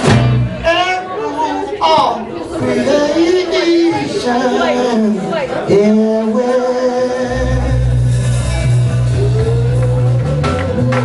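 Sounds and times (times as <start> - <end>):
voices talking and chattering: 0.0 - 11.0.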